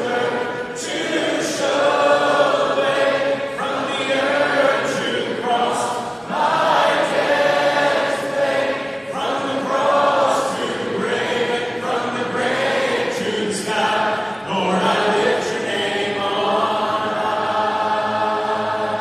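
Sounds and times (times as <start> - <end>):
crowd singing a worship song: 0.0 - 19.0.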